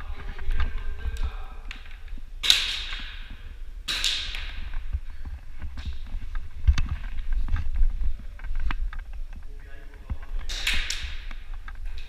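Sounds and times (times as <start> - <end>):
low rumble of movement: 4.6 - 10.5.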